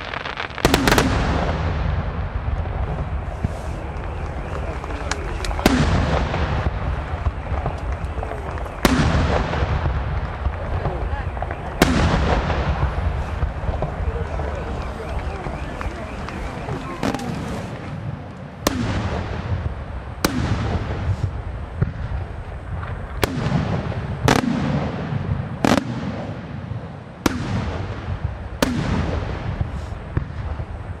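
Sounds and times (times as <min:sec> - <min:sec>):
firework bursts with echo: 0:00.0 - 0:31.0
steady low rumble: 0:00.6 - 0:25.6.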